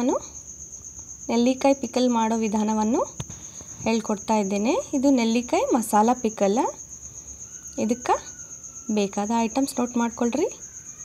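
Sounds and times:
woman speaking: 0:00.0 - 0:00.4, 0:01.3 - 0:03.2, 0:03.8 - 0:06.8, 0:07.8 - 0:08.3, 0:08.9 - 0:10.6
cricket trill: 0:00.0 - 0:11.0.

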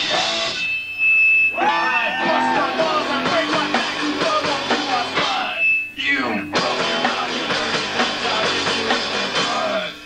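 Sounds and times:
rock band guitar and drums: 0:00.0 - 0:00.7, 0:01.6 - 0:05.5, 0:06.5 - 0:10.0
loud high steady tone: 0:00.0 - 0:08.6
shouted sliding vocal: 0:01.6 - 0:03.8.

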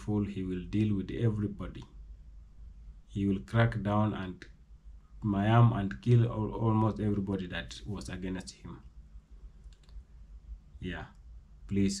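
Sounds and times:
low steady hum: 0:00.0 - 0:12.0
faint clicks: 0:09.6 - 0:10.1
man saying yeah: 0:10.8 - 0:11.1.

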